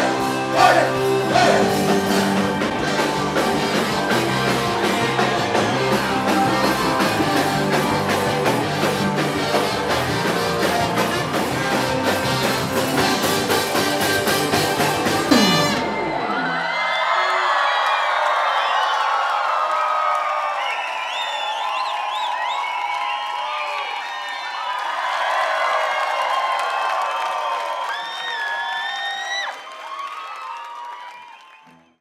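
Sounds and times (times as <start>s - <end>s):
crowd cheering and whooping: 0.1s - 11.1s, 14.2s - 31.9s.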